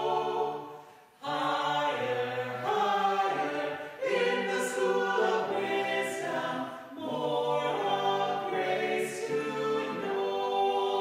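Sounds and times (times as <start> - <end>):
small choir singing: 0.0 - 11.0.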